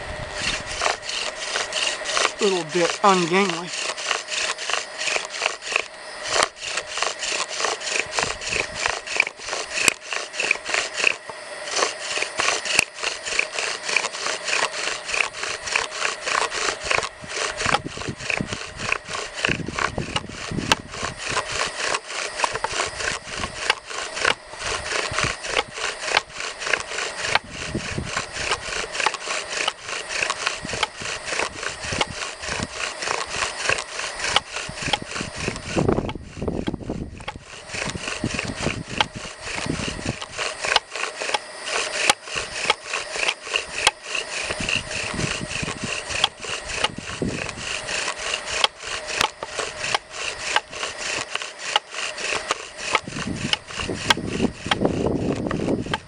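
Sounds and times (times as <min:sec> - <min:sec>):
bow drill rubbing and squeaking: 0:00.0 - 0:56.0.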